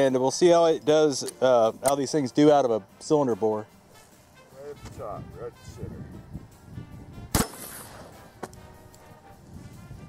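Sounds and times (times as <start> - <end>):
shotgun blast: 7.3 - 8.3.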